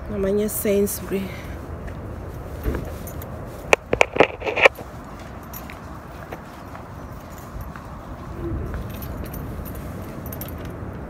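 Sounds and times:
wind rumble on microphone: 0.0 - 11.0
light metallic jingling clinks: 2.8 - 3.4, 5.2 - 5.9, 7.0 - 8.0, 8.7 - 10.8
phone handling noise: 3.7 - 4.8.

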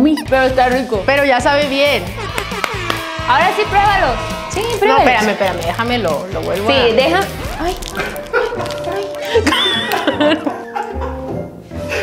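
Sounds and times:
background music: 0.0 - 12.0
high-pitched vocal cries: 2.0 - 3.2.

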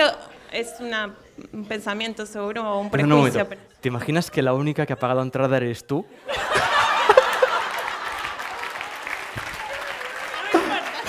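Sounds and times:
audience laughing: 6.2 - 11.0
audience applauding: 6.4 - 11.0.

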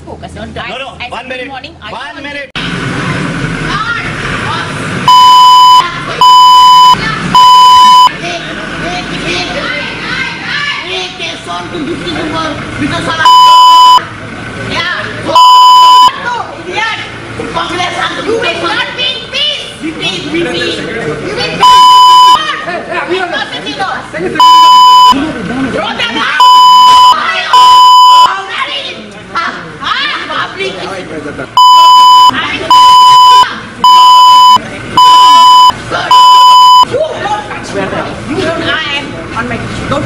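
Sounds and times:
censor bleeps: 5.1 - 8.1, 13.2 - 14.1, 15.3 - 16.1, 21.6 - 22.4, 24.4 - 25.2, 26.4 - 28.4, 31.6 - 36.9
crowd voices: 5.6 - 40.0.

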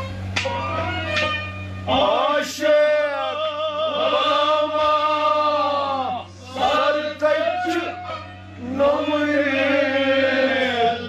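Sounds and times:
man singing: 1.9 - 11.0.

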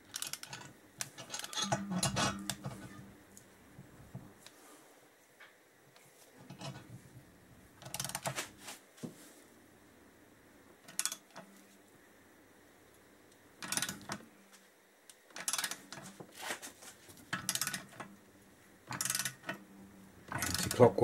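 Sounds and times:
socket ratchet clicking: 10.9 - 11.3, 15.4 - 15.8, 18.9 - 19.6.

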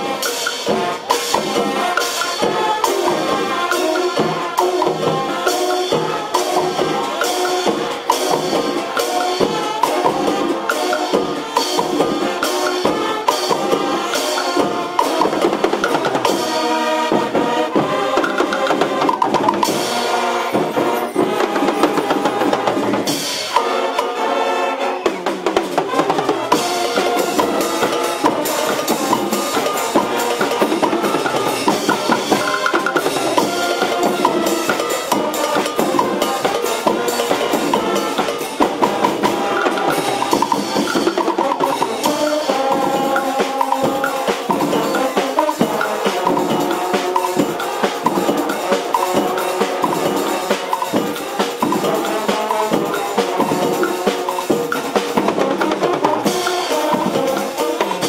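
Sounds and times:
brass melody: 0.0 - 58.0
marching percussion and bass drums: 0.0 - 58.0.

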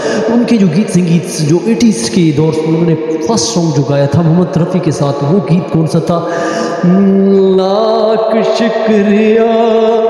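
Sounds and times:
man singing long note: 6.7 - 10.0.

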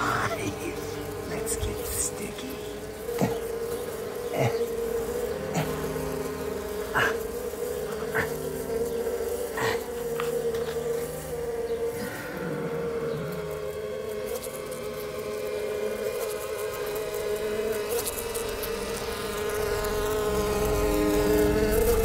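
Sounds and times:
bee buzzing: 0.0 - 22.0.

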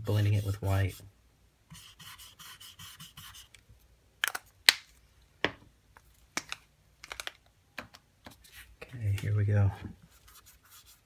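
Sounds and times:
marker tip scrubbing on board: 1.7 - 3.6.

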